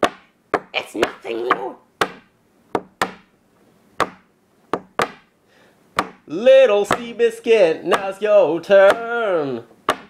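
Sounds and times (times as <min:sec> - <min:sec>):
sharp knocks on hard surface: 0:00.0 - 0:03.3, 0:04.0 - 0:05.3, 0:06.0 - 0:06.3, 0:06.9 - 0:07.1.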